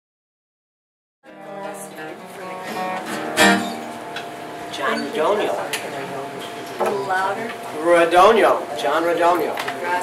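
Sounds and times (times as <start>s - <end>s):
acoustic guitar picking: 1.2s - 8.7s
loud guitar strum: 1.3s - 5.6s.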